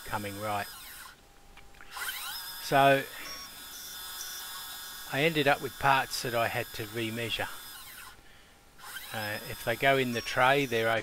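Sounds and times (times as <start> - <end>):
lathe spindle whining: 0.0 - 1.2, 1.9 - 8.2, 8.8 - 11.0.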